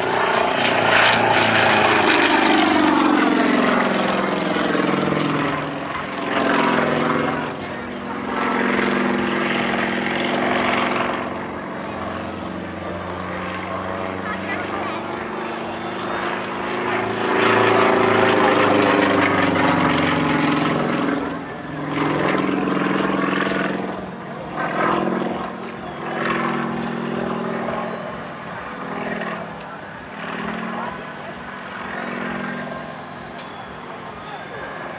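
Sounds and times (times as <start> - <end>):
propeller plane engine at high power: 0.0 - 34.9.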